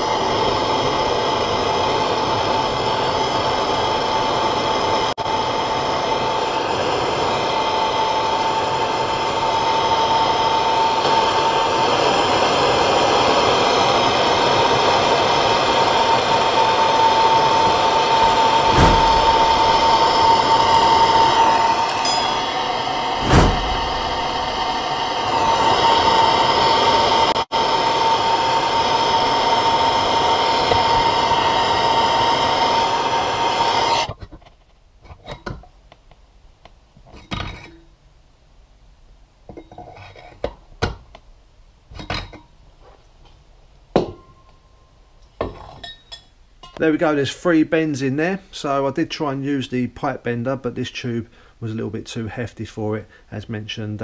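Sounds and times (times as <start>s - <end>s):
blowtorch flame rushing: 0.0s - 34.1s.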